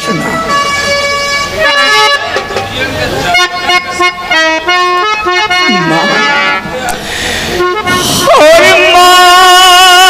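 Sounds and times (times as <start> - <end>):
harmonium melody: 0.0 - 10.0.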